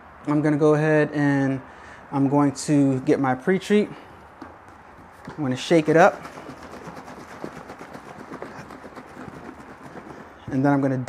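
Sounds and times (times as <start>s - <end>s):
liquid sloshing in plastic jug: 4.9s - 10.6s.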